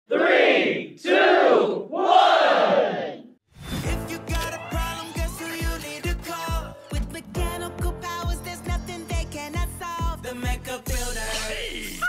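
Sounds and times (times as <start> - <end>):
group shouting together: 0.1 - 3.3, 4.3 - 6.2
music with steady beat: 3.8 - 12.0.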